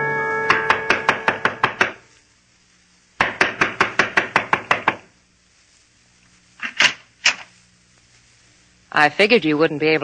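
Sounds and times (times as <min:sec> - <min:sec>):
rapid knocking on wooden door: 0:03.2 - 0:05.0.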